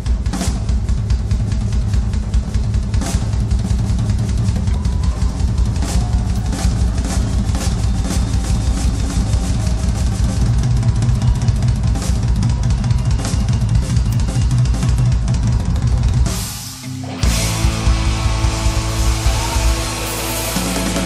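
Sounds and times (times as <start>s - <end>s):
rock drum beat: 0.0s - 21.0s.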